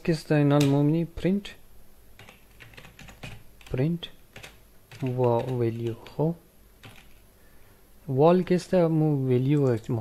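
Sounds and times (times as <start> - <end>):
computer keyboard typing: 2.2 - 6.2, 6.8 - 7.2.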